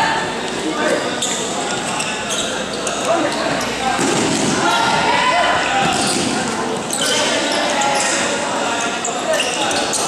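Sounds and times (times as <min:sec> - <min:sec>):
people shouting: 0:04.5 - 0:06.0.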